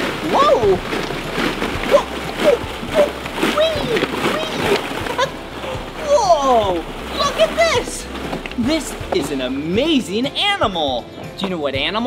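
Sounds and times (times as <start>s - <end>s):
plastic balls rustling and clattering: 0.0s - 6.0s.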